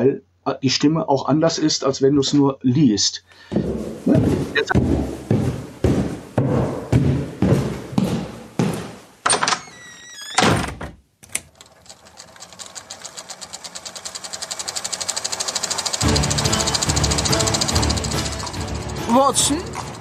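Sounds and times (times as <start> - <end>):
fast even ticking: 11.6 - 20.0
music with deep bass: 16.0 - 20.0.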